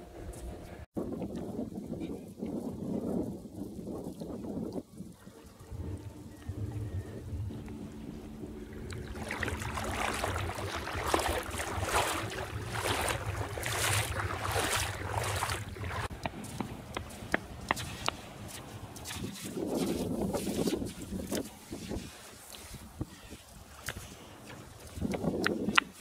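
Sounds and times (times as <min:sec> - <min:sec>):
wind rumbling on microphone: 0:00.0 - 0:26.0
shallow water lapping: 0:00.2 - 0:26.0.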